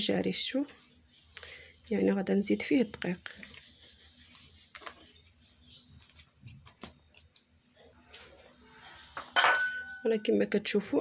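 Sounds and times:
hands kneading dough: 0:00.0 - 0:09.4
dish clinking against bowl: 0:09.2 - 0:10.1.

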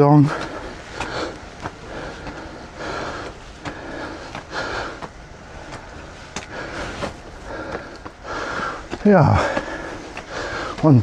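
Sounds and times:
footsteps on stone stairs: 0:00.0 - 0:11.0
person breathing hard: 0:00.1 - 0:10.9.

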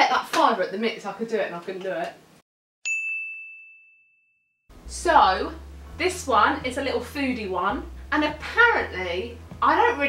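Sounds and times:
bell-like ding: 0:02.8 - 0:04.5.

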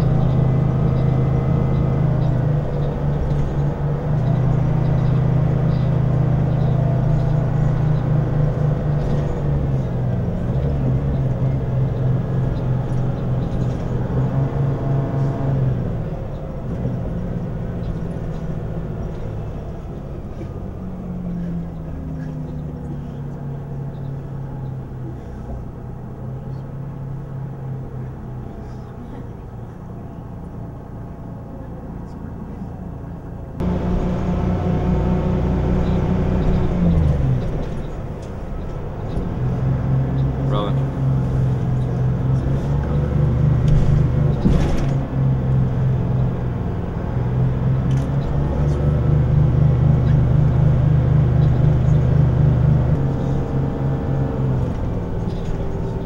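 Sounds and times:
bus engine drone: 0:00.0 - 0:56.0.

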